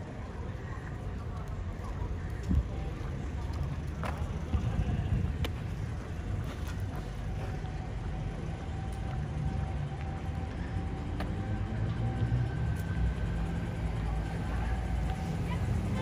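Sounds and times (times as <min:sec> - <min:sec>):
cars driving slowly: 0:00.0 - 0:16.0
faint steady whine: 0:00.0 - 0:16.0.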